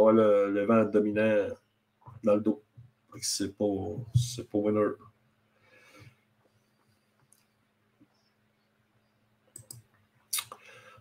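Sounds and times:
faint steady hum: 0:00.0 - 0:11.0
faint short clicks: 0:09.6 - 0:10.6.

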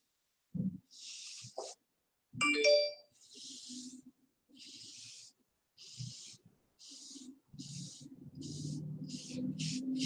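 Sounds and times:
electronic notification chime: 0:02.4 - 0:03.0
hairbrush stroking hair: 0:05.9 - 0:10.0.

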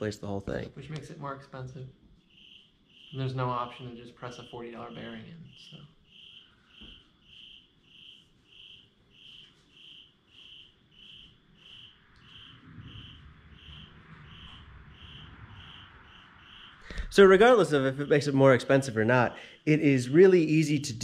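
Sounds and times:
cricket chirping: 0:00.1 - 0:20.8
low rumble: 0:12.2 - 0:17.6.

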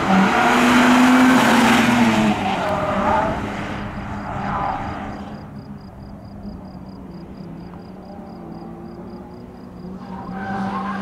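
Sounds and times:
car engine running hard: 0:00.0 - 0:11.0
tyre squeal: 0:09.9 - 0:11.0.

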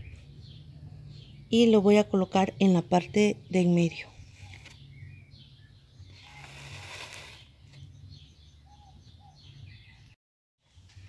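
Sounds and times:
faint bird chirps: 0:03.5 - 0:10.2
plastic pot scraping in wet cement: 0:04.0 - 0:04.9, 0:06.0 - 0:07.9.

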